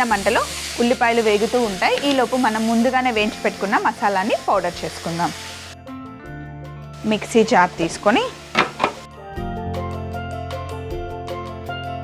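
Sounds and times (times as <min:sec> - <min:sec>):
woman speaking: 0:00.0 - 0:05.4, 0:07.0 - 0:08.4
soft background music: 0:00.0 - 0:12.0.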